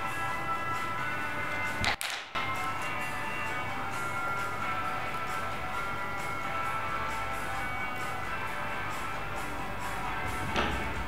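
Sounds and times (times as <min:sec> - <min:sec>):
music with slow held tones: 0:00.0 - 0:11.0.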